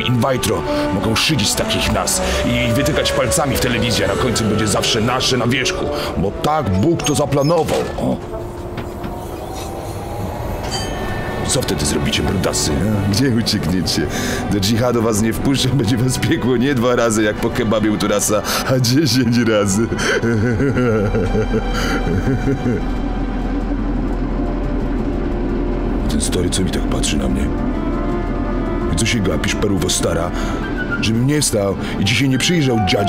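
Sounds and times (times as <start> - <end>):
vehicle running rumble: 19.4 - 33.0.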